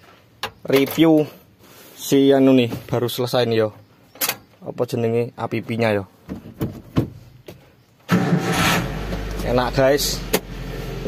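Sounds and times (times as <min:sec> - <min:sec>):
engine starter cranking: 0:08.1 - 0:09.7.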